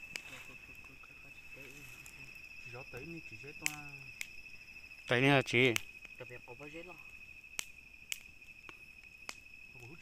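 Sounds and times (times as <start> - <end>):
insect high-pitched trill: 0.0 - 10.0
wood fire crackling: 0.0 - 10.0.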